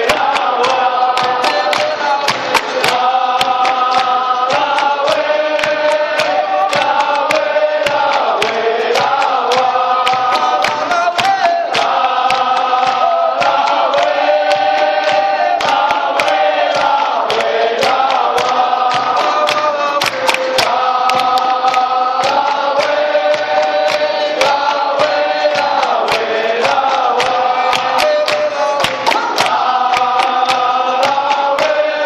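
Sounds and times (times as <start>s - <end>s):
group singing in chorus: 0.0s - 32.0s.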